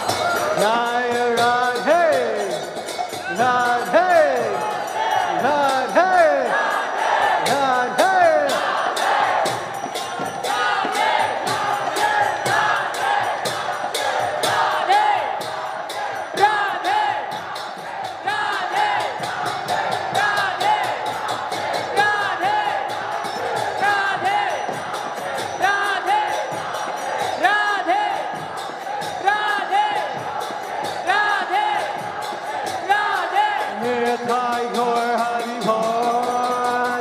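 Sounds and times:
crowd singing and calling out: 0:00.0 - 0:37.0
hand cymbals clashing: 0:00.0 - 0:37.0.

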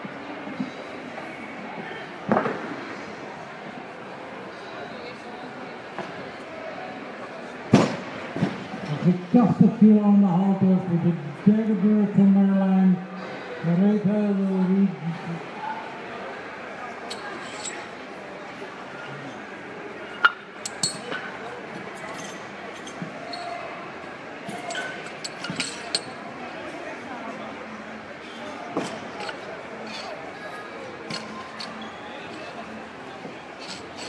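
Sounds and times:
murmur of voices: 0:00.0 - 0:34.0.

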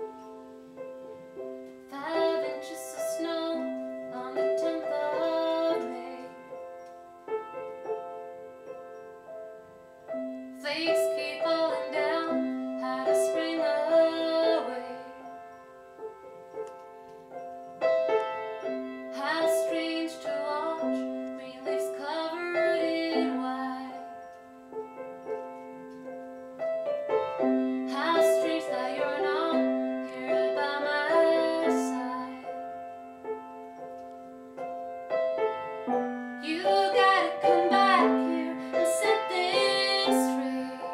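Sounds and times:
upright piano playing: 0:00.0 - 0:40.9
woman singing: 0:01.9 - 0:06.5, 0:10.6 - 0:15.4, 0:19.1 - 0:24.1, 0:27.9 - 0:32.6, 0:36.4 - 0:40.9.

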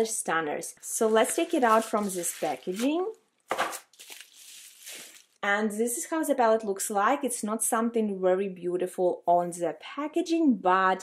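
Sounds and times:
packaging scraping and rustling: 0:01.0 - 0:05.4.

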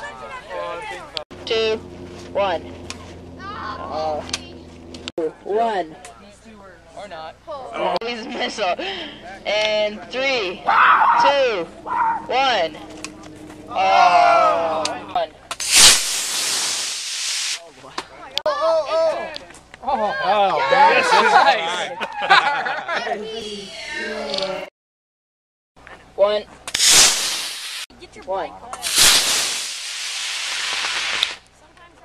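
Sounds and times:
rocket motor igniting: 0:15.5 - 0:17.7, 0:26.7 - 0:27.9, 0:28.8 - 0:31.5
hiss of rocket thrust: 0:15.6 - 0:17.7, 0:26.7 - 0:27.9, 0:28.8 - 0:31.4.

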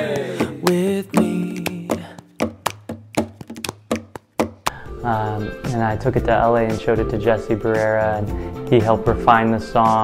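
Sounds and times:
acoustic guitar strumming: 0:00.0 - 0:04.8
percussive hits on guitar strings: 0:00.2 - 0:04.8.

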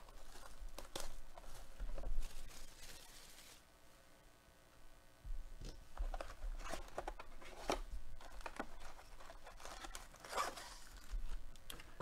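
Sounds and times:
foil packs tearing and crinkling: 0:00.0 - 0:03.6, 0:08.2 - 0:11.1
cardboard clicks and rustles: 0:06.0 - 0:12.0.

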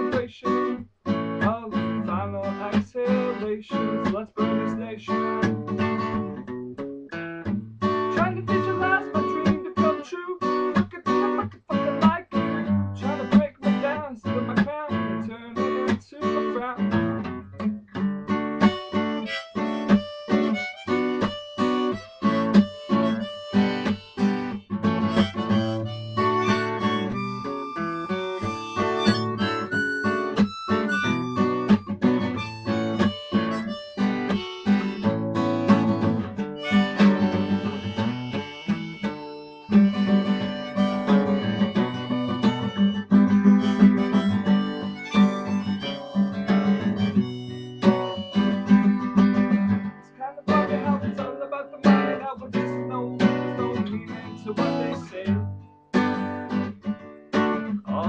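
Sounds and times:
acoustic guitar chords: 0:00.0 - 0:58.0
long held notes: 0:25.0 - 0:35.3, 0:36.6 - 0:48.9.

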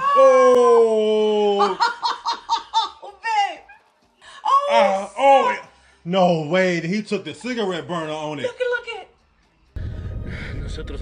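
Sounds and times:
person screaming: 0:00.0 - 0:01.8.

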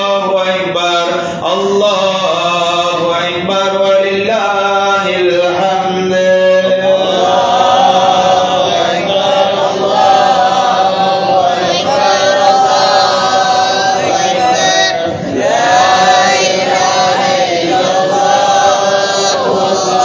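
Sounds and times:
voices chanting devotional melody: 0:00.0 - 0:20.0.

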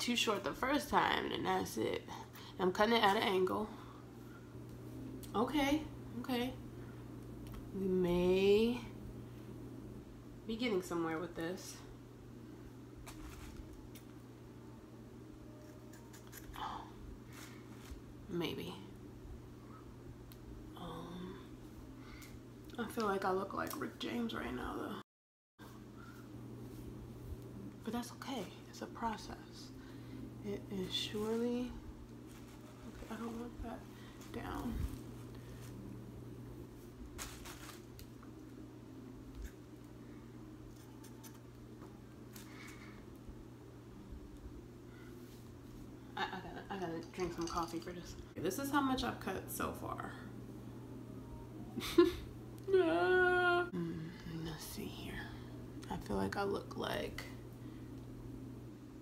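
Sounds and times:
low steady hum: 0:00.0 - 0:25.0, 0:25.6 - 0:59.0
scissors snipping hair: 0:15.6 - 0:16.6
fingers rustling through hair: 0:30.8 - 0:36.0.

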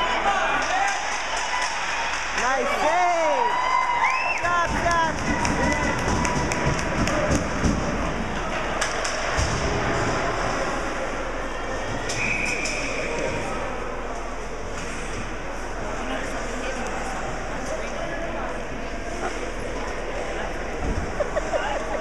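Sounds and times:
spectators shouting: 0:00.0 - 0:07.7
hockey sticks and puck clacking: 0:00.5 - 0:03.2, 0:04.5 - 0:09.7
short whistle blast: 0:12.1 - 0:13.3.

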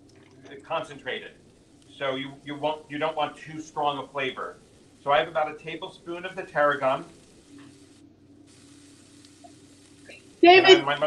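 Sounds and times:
low steady hum: 0:00.0 - 0:11.0
mushrooms sizzling in a skillet: 0:02.0 - 0:11.0.

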